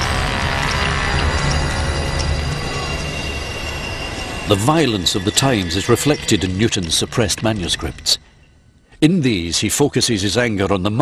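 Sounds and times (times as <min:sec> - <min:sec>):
low rumble: 0:00.0 - 0:08.7
dense drone of high tones: 0:00.0 - 0:09.0.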